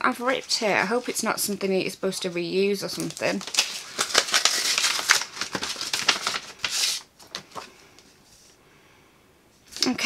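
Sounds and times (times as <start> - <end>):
paper envelope rustling: 0.2 - 1.6, 2.8 - 8.5.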